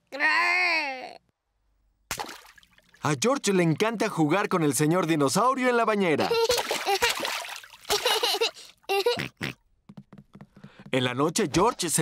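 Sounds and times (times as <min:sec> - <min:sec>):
cartoon piglet vocal sounds: 0:00.1 - 0:01.2.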